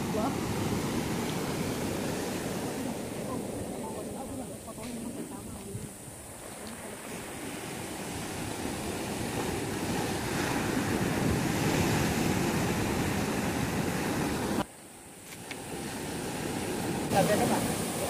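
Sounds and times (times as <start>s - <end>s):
sea surf breaking: 0.0s - 14.7s, 15.4s - 18.0s.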